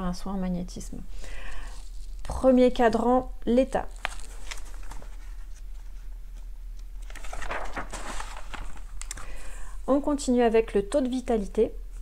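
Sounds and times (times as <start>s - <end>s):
paper pages rustling: 1.7s - 2.4s, 3.8s - 9.2s.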